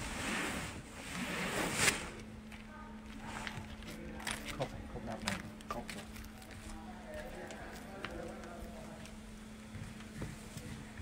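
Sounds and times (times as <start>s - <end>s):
steady low hum: 0.0s - 11.0s
faint voices talking: 2.6s - 11.0s.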